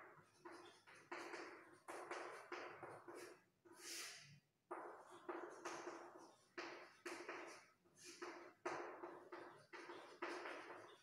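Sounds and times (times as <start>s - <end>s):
chalk strokes and taps on blackboard: 0.0s - 11.0s
high chalk scratch: 0.2s - 4.3s.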